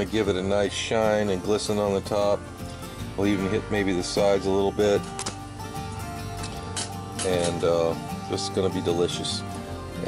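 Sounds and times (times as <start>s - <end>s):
background music with held notes: 0.0s - 10.0s.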